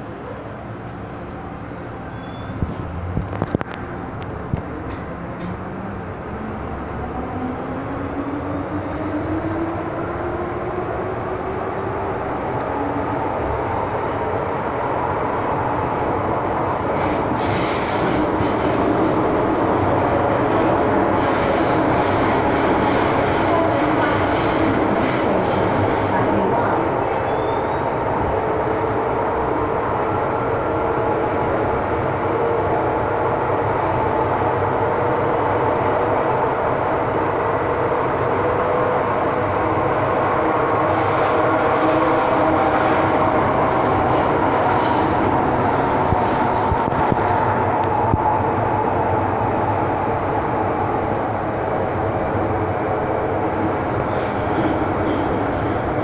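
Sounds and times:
train wheels rumbling: 0:00.0 - 0:56.0
high thin wheel squeal: 0:02.1 - 0:02.6, 0:04.5 - 0:08.7.

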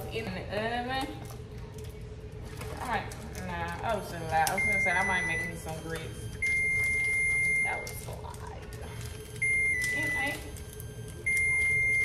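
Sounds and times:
woman speaking: 0:00.0 - 0:01.3, 0:02.7 - 0:06.2, 0:07.4 - 0:08.9, 0:09.8 - 0:10.6
kitchen room noise: 0:00.0 - 0:12.0.

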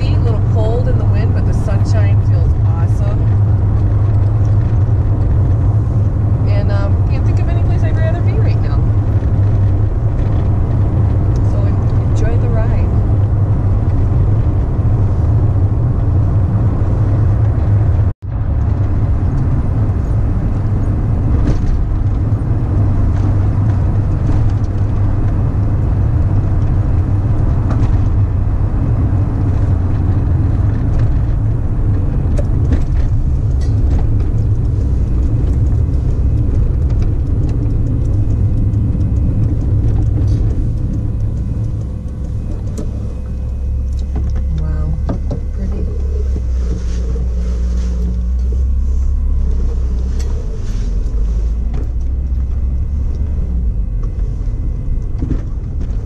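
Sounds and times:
road and engine rumble in van: 0:00.0 - 0:56.0.

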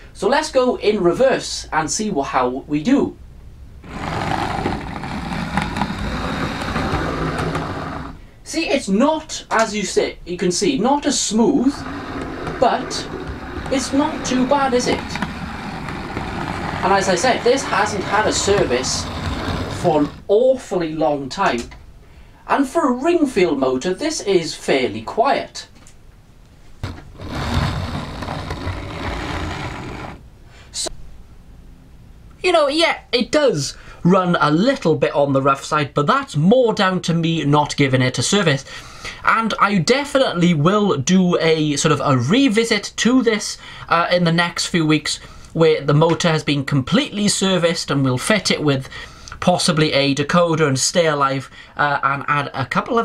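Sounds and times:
model train motor whirring: 0:03.8 - 0:08.2, 0:11.7 - 0:20.2, 0:27.2 - 0:30.2
wheel rumble: 0:03.8 - 0:08.2, 0:11.2 - 0:20.3, 0:26.8 - 0:30.2.

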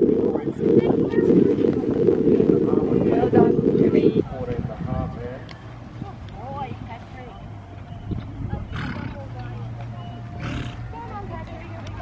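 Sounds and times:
distant voices: 0:00.0 - 0:12.0
horse snorting: 0:08.6 - 0:09.4, 0:10.4 - 0:10.9.

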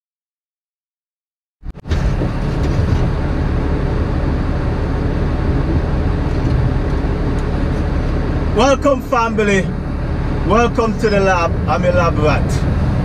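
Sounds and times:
truck engine rumble: 0:01.6 - 0:13.0.

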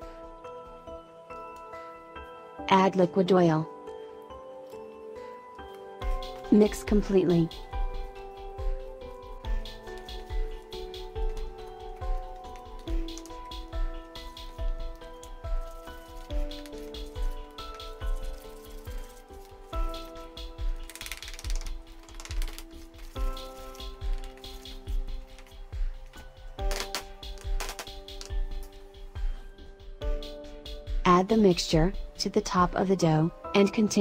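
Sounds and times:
background music with steady beat: 0:00.0 - 0:34.0.

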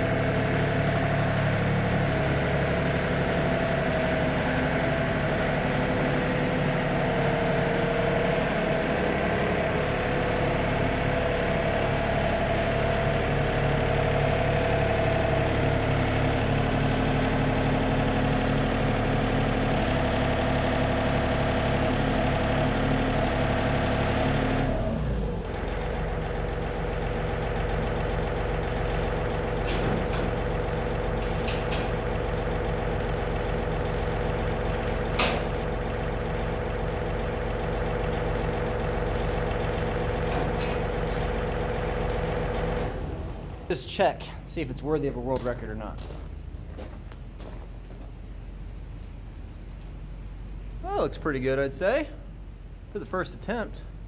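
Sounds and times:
tractor engine running: 0:00.0 - 0:54.0.

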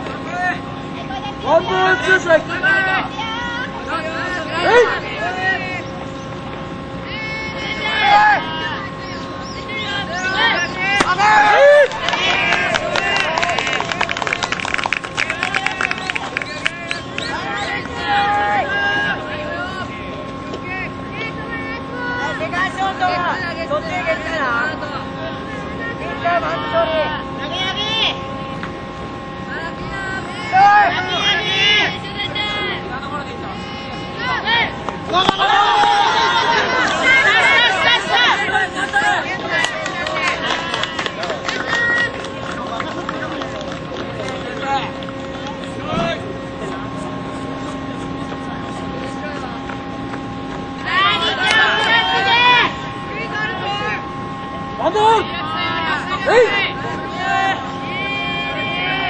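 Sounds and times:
steady hum: 0:00.0 - 0:59.0
young players shouting: 0:00.3 - 0:05.9, 0:07.0 - 0:14.4, 0:15.2 - 0:20.0, 0:29.6 - 0:32.8, 0:33.6 - 0:42.2, 0:50.8 - 0:59.0.

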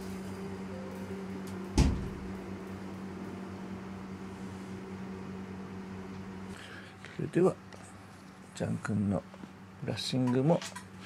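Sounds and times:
steady low hum: 0:00.0 - 0:10.2.

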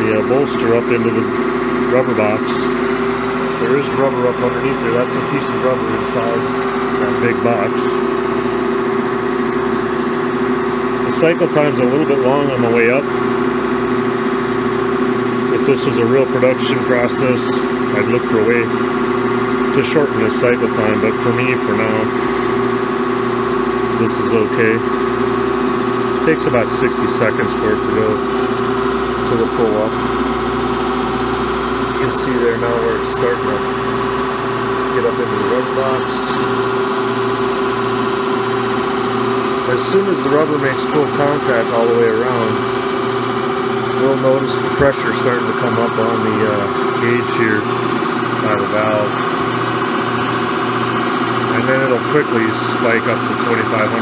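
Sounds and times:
hydraulic press humming: 0:00.0 - 0:54.0.

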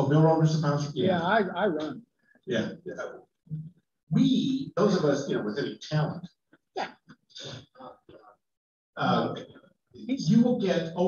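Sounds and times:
person mumbling softly: 0:09.0 - 0:09.4.

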